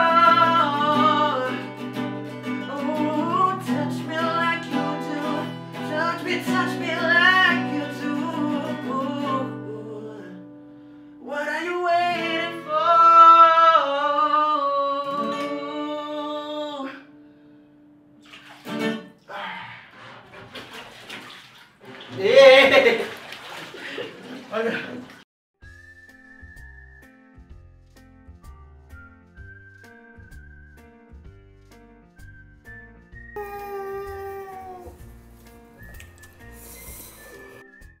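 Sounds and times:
water splashing in a bathtub: 18.2s - 19.3s, 19.9s - 25.2s.

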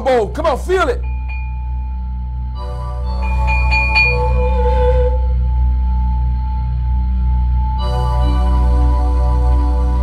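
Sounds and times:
higher bowl-like tones: 1.0s - 9.7s
low drone: 1.0s - 10.0s
pulsing deep tones: 1.0s - 10.0s
singing bowl tone: 1.0s - 10.0s.

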